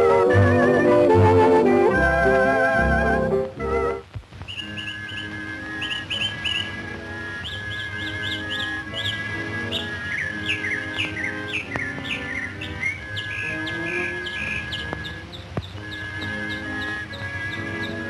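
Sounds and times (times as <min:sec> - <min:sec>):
film score music: 0:00.0 - 0:18.0
bird chirps: 0:04.4 - 0:18.0.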